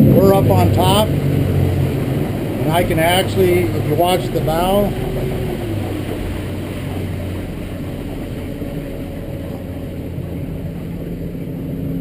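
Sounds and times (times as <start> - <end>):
outboard motor drone: 0.0 - 12.0
water rushing along hull: 0.0 - 12.0.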